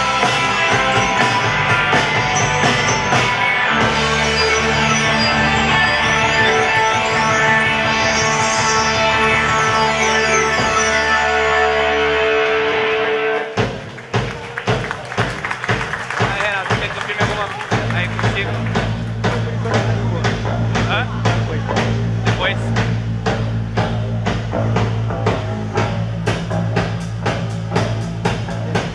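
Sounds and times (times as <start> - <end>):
live rock band playing: 0.0 - 28.9
vocals: 16.2 - 22.9
steady low bass note: 17.7 - 28.9.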